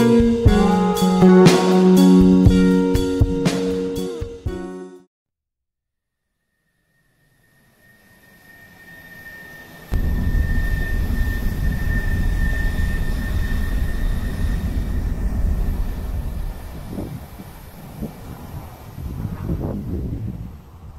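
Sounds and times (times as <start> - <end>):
thin steady whine: 6.4 - 20.9.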